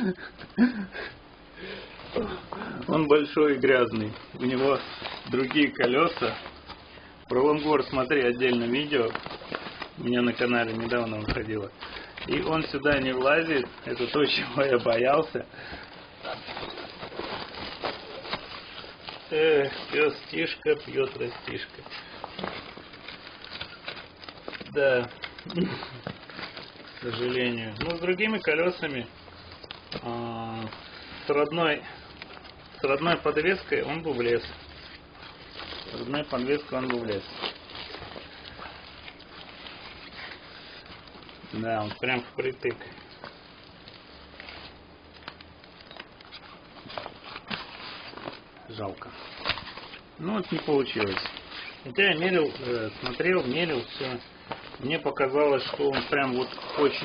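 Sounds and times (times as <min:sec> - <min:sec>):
nylon bag rustling: 0:01.6 - 0:57.0.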